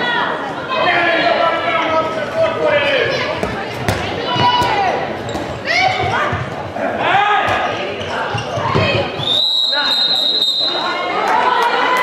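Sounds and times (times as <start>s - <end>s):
ball bouncing on hall floor: 3.4s - 6.7s, 7.4s - 9.2s.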